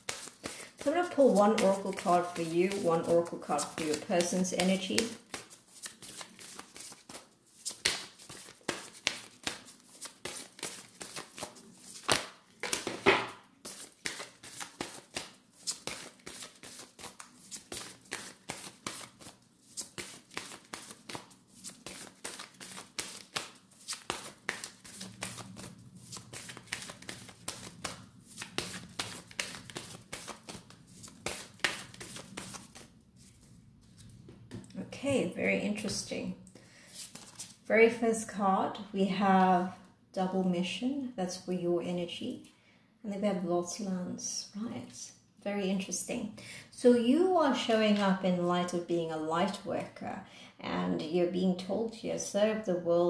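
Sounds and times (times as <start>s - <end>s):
cards being shuffled: 0.0s - 34.7s, 36.9s - 37.6s.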